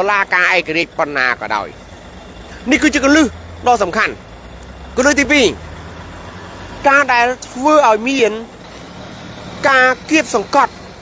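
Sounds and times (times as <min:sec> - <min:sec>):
man speaking: 0:00.0 - 0:01.8, 0:02.5 - 0:04.2, 0:04.9 - 0:05.7, 0:06.8 - 0:08.6, 0:09.6 - 0:10.8.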